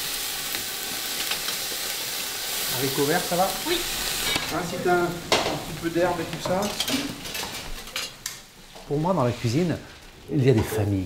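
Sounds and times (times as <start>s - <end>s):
soft steady hiss: 0.0s - 11.0s
utensils clinking on cookware: 3.7s - 8.3s.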